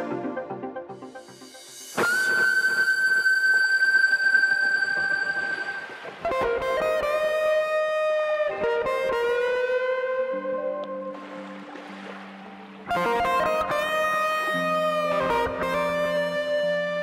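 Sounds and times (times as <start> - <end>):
electric guitar sustained notes: 0.0 - 12.1, 12.8 - 17.0.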